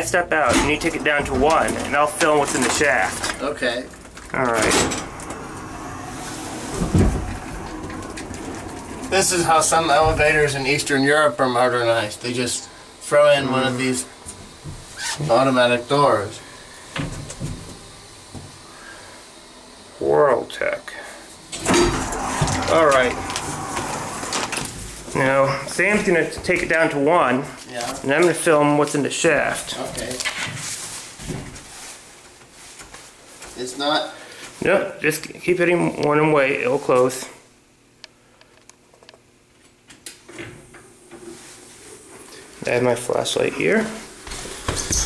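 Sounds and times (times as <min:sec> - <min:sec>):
elevator hum: 0:00.8 - 0:20.1, 0:21.3 - 0:26.0.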